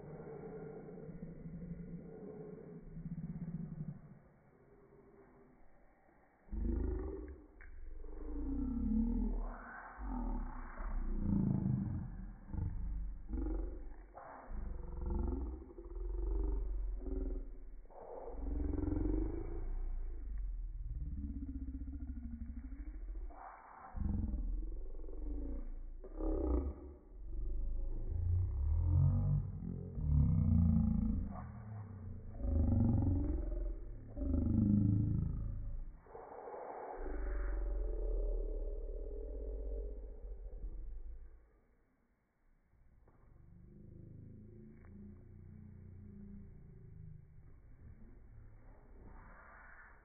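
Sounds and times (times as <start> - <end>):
steady low hum: 0.0 - 41.8, 42.5 - 50.0
slowed-down deep voices: 0.0 - 50.0.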